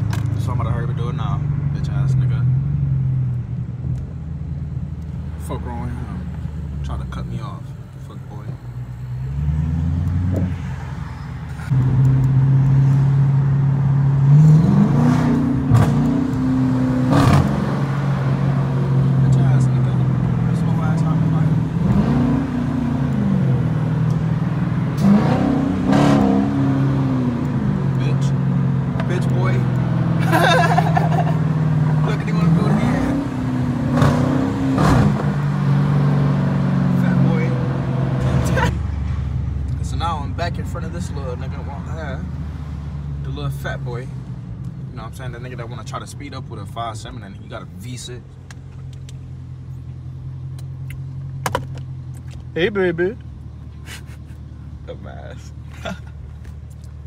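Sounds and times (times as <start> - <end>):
car engine drone from inside cabin: 0.0 - 45.6.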